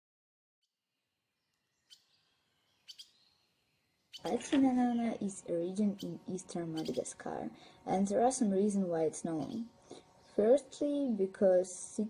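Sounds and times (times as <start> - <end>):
faint high bird chirps: 1.3 - 7.1, 9.4 - 10.4.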